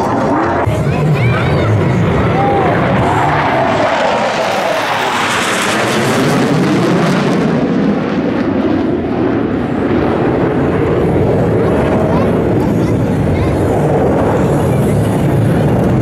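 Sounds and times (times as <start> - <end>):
jets roaring overhead: 0.0 - 16.0
low jet rumble: 0.0 - 16.0.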